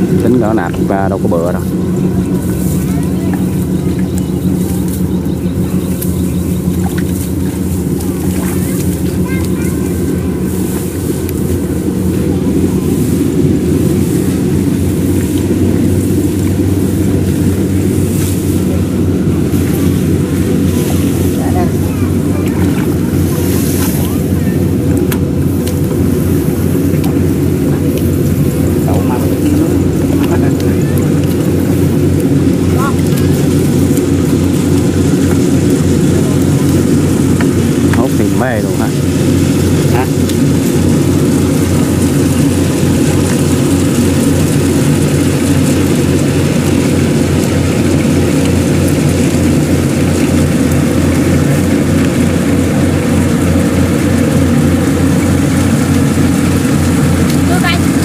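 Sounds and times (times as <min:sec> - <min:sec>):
combine harvester droning: 0:00.0 - 0:58.0.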